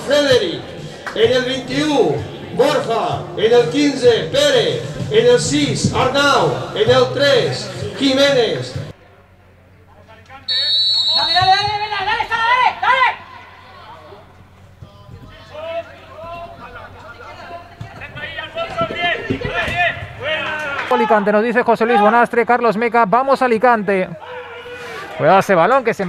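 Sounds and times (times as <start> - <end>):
referee's whistle blast: 10.5 - 12.0
people shouting: 24.2 - 25.2.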